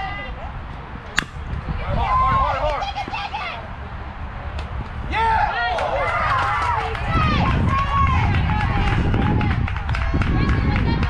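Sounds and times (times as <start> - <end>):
steady low rumble: 0.0 - 2.3
young voices shouting and cheering: 1.6 - 3.8, 5.0 - 11.0.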